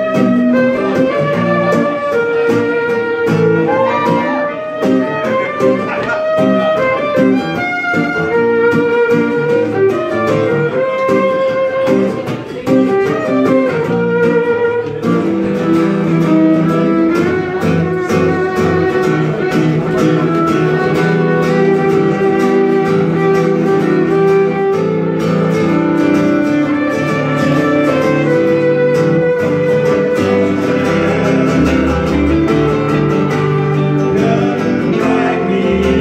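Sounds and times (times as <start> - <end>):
bowed fiddle melody: 0.0 - 36.0
electric guitar: 0.0 - 36.0
strummed acoustic guitar: 0.0 - 36.0.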